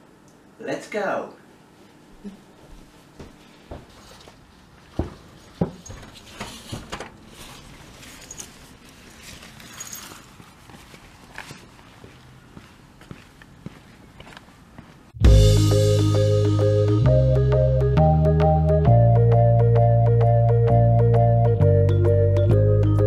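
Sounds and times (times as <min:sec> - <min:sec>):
footsteps on hard paving: 0:02.7 - 0:06.9, 0:10.3 - 0:15.2.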